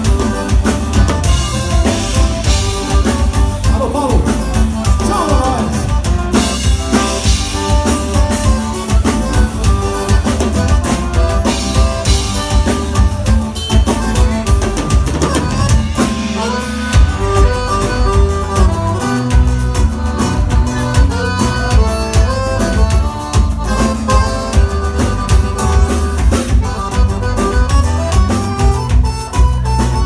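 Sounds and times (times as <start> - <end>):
accordion melody: 0.0 - 30.0
drum kit beat: 0.0 - 30.0
live band playing: 0.0 - 30.0.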